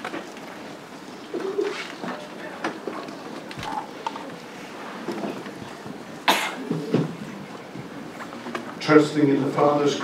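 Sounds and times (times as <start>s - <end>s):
faint open-air background noise: 0.0s - 10.0s
bird cooing: 1.2s - 2.2s, 3.1s - 4.6s, 5.6s - 7.8s.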